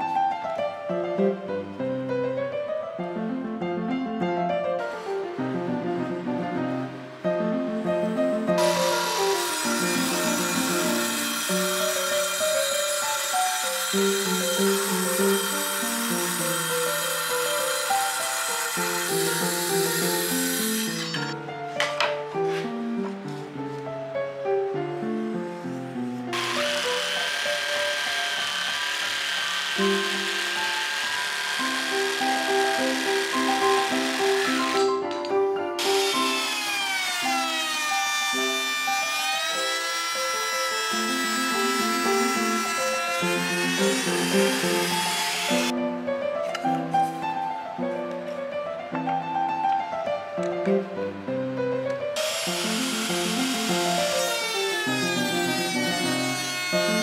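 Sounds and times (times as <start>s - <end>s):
piano-like background music: 0.0s - 57.0s
power tool cutting wood: 8.5s - 21.4s, 26.3s - 35.1s, 35.8s - 45.7s, 52.2s - 57.0s.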